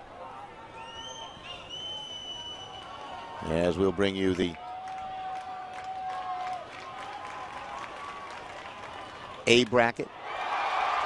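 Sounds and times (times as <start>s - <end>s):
distant crowd voices: 0.0s - 4.5s
scattered clapping: 4.8s - 9.8s.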